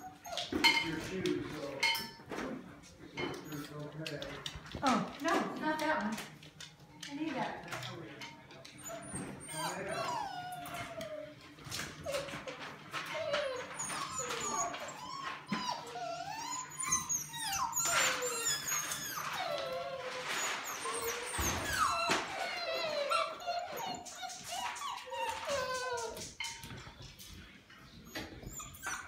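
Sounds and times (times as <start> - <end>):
puppies whining and whimpering: 0.0 - 2.2, 3.2 - 4.2, 8.6 - 26.8, 27.9 - 29.0.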